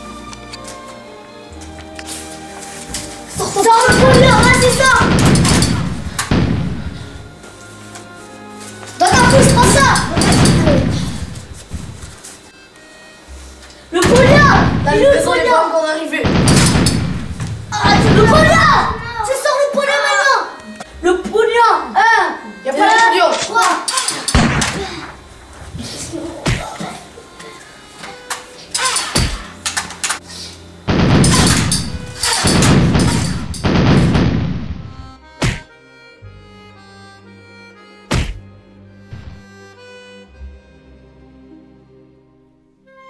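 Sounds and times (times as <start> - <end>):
music with held notes: 0.0 - 15.6, 18.2 - 24.6, 34.9 - 43.0
gunshots: 3.9 - 7.2, 16.2 - 19.0, 24.4 - 24.9, 30.9 - 35.7
thuds: 3.9 - 7.2, 16.3 - 18.8, 38.1 - 38.4, 39.1 - 39.4.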